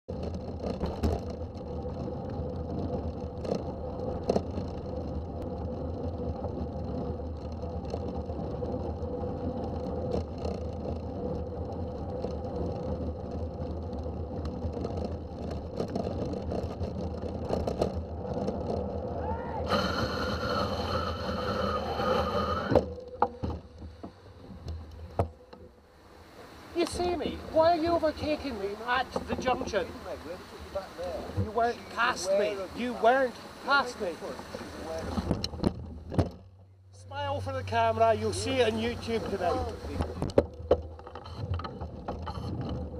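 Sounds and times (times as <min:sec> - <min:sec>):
wind: 0:00.0 - 0:42.9
tyres on wet road: 0:00.1 - 0:42.9
bright hiss and whine: 0:19.6 - 0:22.9
car engine running: 0:35.2 - 0:41.1.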